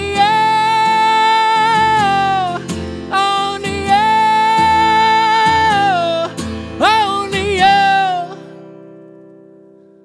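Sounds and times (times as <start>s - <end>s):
man singing: 0.0s - 8.7s
acoustic guitar strumming: 0.0s - 10.0s.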